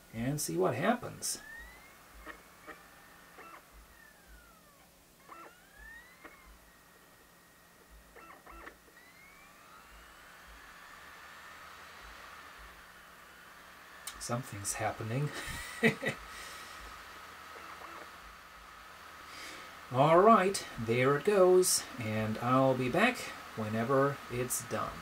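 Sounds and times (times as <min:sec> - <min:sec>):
disc drive spinning and seeking: 0:00.0 - 0:25.0
disc drive whine: 0:00.0 - 0:25.0
disc drive clicks: 0:01.4 - 0:12.9, 0:15.8 - 0:18.8.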